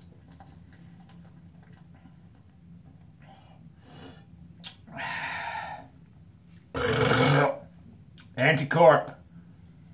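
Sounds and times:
man burping loudly: 0:06.7 - 0:07.7.

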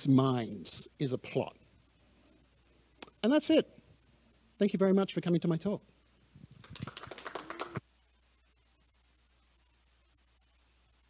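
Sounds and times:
rapid clicks and taps: 0:06.5 - 0:07.8.

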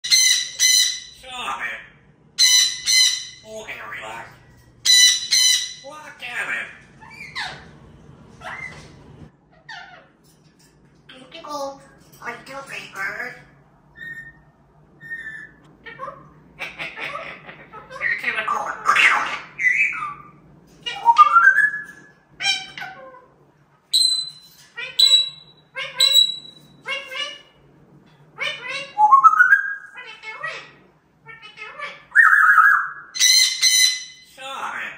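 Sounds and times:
parrot squawking: 0:00.0 - 0:07.8, 0:08.4 - 0:10.2, 0:12.7 - 0:27.6, 0:28.3 - 0:34.9
parrot whistling: 0:04.8 - 0:05.8, 0:23.9 - 0:27.4, 0:32.1 - 0:34.2.

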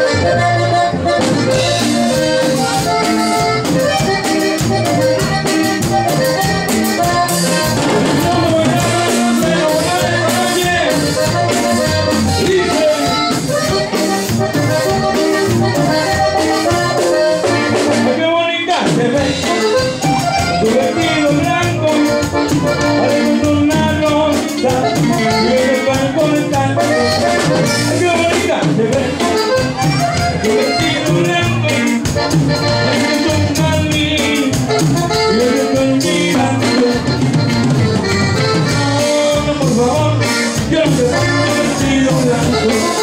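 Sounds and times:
accordion melody: 0:00.0 - 0:43.0
congas: 0:00.0 - 0:43.0
guitar strumming: 0:00.0 - 0:43.0
steady drum beat: 0:00.0 - 0:43.0.

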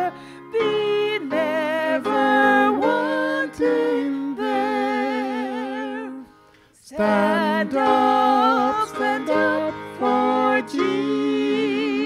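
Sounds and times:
woman and man singing a hymn: 0:00.0 - 0:12.0.

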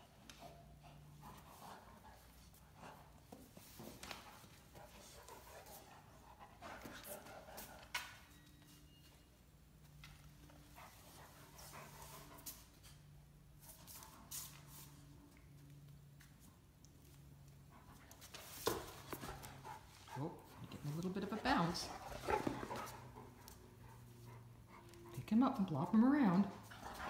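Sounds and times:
paws clicking on tile floor: 0:00.2 - 0:08.8, 0:09.8 - 0:25.3, 0:26.4 - 0:27.0
paws scrabbling: 0:18.2 - 0:24.3.

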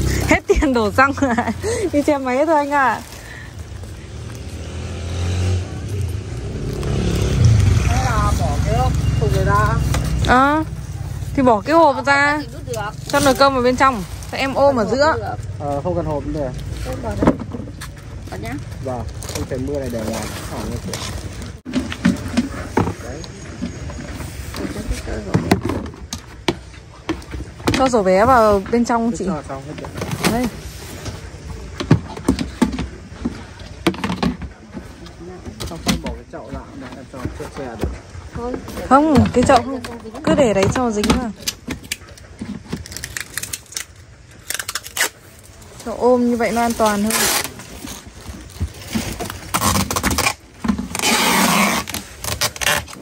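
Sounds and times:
plastic basins clicking and knocking: 0:25.0 - 0:43.0
people talking: 0:34.4 - 0:41.6
plastic basins knocking: 0:35.5 - 0:42.8.

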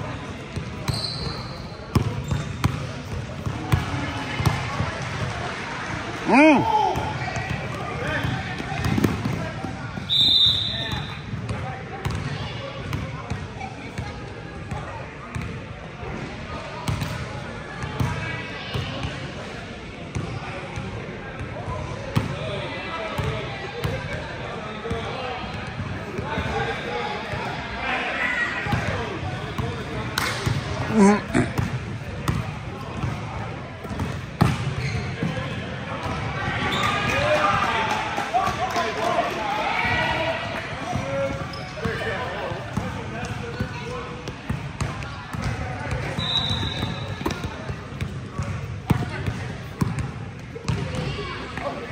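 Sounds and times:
basketball bouncing on court: 0:00.6 - 0:04.8, 0:06.9 - 0:10.1, 0:10.8 - 0:13.4, 0:30.4 - 0:35.4, 0:40.8 - 0:51.8
referee's whistle: 0:00.9 - 0:01.6, 0:10.1 - 0:11.2, 0:46.1 - 0:47.3
people calling out: 0:30.8 - 0:31.6.

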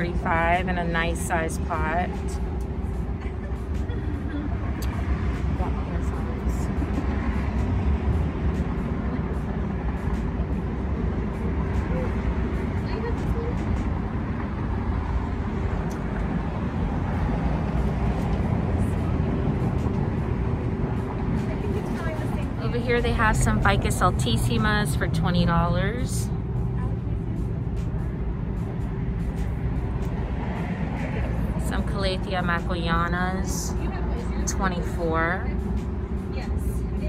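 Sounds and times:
low background rumble: 0:00.0 - 0:37.0
mid-pitched hum: 0:00.0 - 0:37.0.

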